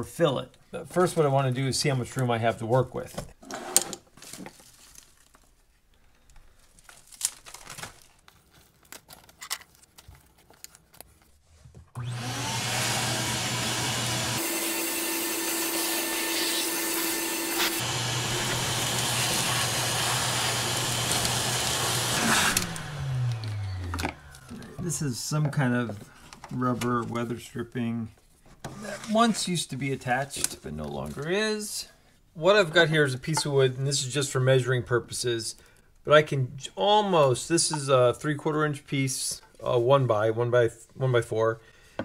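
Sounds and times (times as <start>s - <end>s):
shop vacuum running: 12.0s - 25.2s
vacuum sucking up wood debris: 12.0s - 26.9s.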